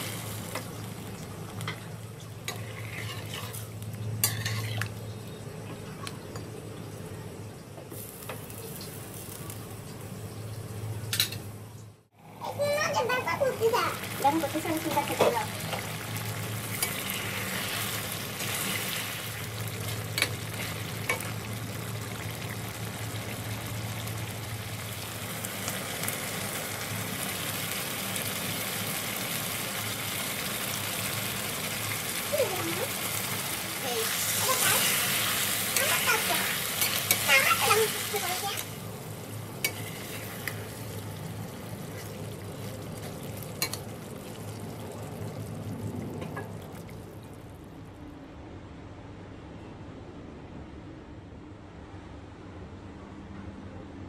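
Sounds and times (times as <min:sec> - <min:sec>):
curry bubbling and sizzling: 0:00.0 - 0:47.7.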